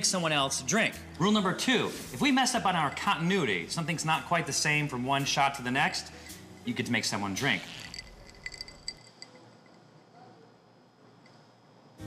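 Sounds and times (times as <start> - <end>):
thin steady ringing: 2.6 - 3.6, 6.1 - 10.2
light glass clinks: 2.7 - 3.5, 7.6 - 10.0.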